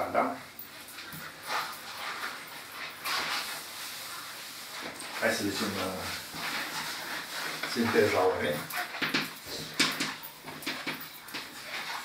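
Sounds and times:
cloth wiping a chalkboard: 0:00.6 - 0:12.0.

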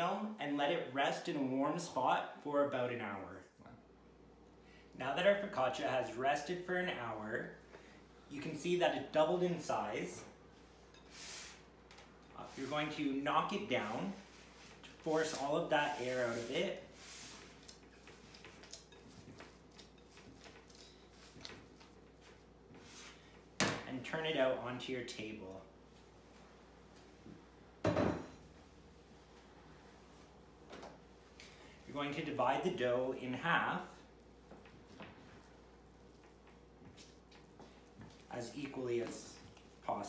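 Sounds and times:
hands squishing dough: 0:34.5 - 0:40.0.

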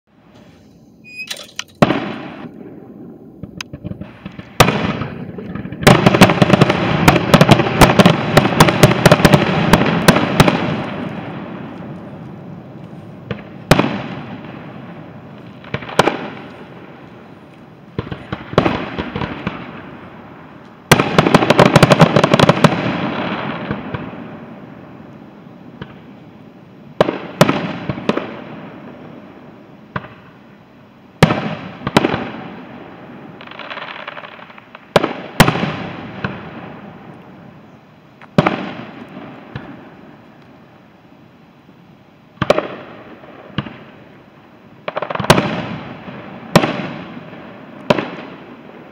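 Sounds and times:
firework crackles: 0:00.1 - 0:48.9
firework shells bursting: 0:01.0 - 0:02.6.

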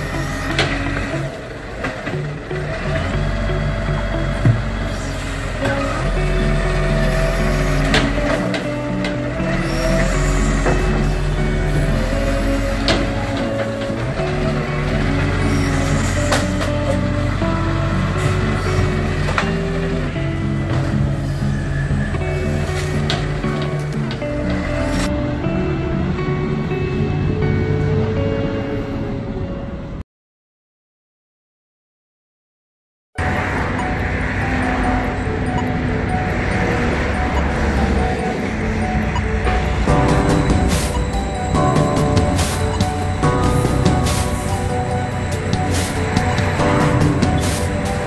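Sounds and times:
background music: 0:00.0 - 0:30.0, 0:33.2 - 0:48.0
low vehicle rumble: 0:00.0 - 0:30.0, 0:33.2 - 0:48.0.

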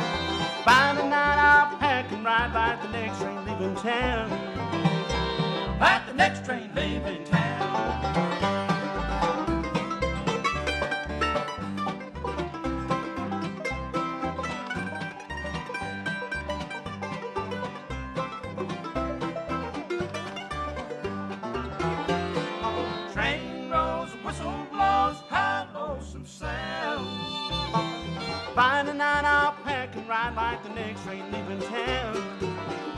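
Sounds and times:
acoustic guitar: 0:00.0 - 0:32.9
banjo: 0:00.0 - 0:32.9
fiddle: 0:00.0 - 0:32.9
mandolin: 0:00.0 - 0:32.9.

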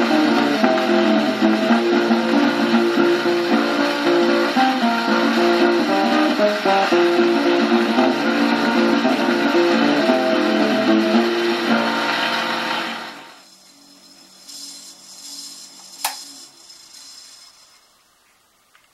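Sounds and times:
guitar-led string tune on record: 0:00.0 - 0:13.3
record surface hiss: 0:00.0 - 0:18.9
sharp record click: 0:15.4 - 0:16.6.

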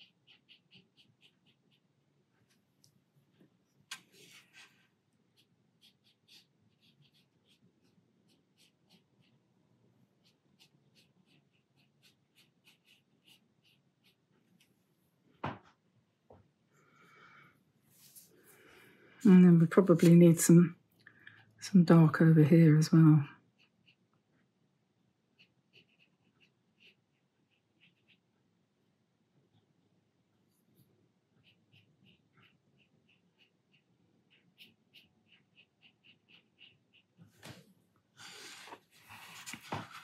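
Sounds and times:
paintbrush strokes on paper: 0:00.0 - 0:02.6, 0:03.9 - 0:09.4, 0:10.1 - 0:14.7, 0:17.9 - 0:20.6, 0:25.3 - 0:28.3, 0:30.5 - 0:37.6, 0:38.2 - 0:40.0
brush stroking across paper: 0:03.9 - 0:09.4, 0:17.9 - 0:18.7, 0:38.2 - 0:40.0.

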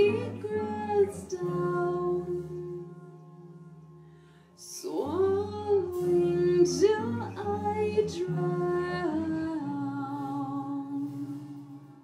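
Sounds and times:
band guitars: 0:00.0 - 0:12.0
woman singing long note: 0:04.6 - 0:11.9.

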